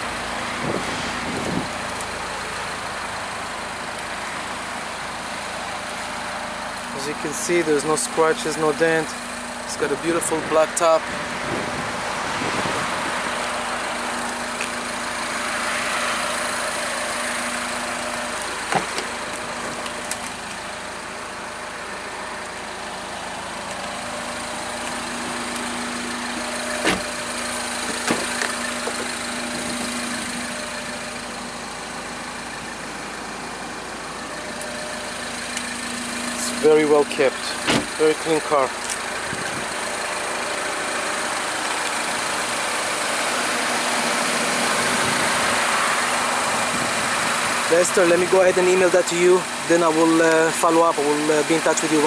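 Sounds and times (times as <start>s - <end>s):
car engine idling: 0.0s - 52.0s.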